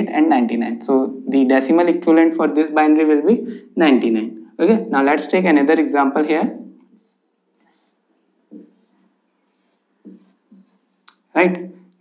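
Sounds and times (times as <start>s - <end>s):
marker writing on whiteboard: 6.9s - 11.8s.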